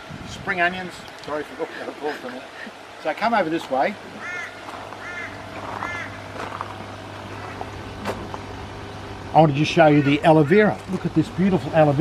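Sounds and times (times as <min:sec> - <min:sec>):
steady low hum: 0:00.0 - 0:12.0
bird calling: 0:04.1 - 0:08.5, 0:09.6 - 0:11.1.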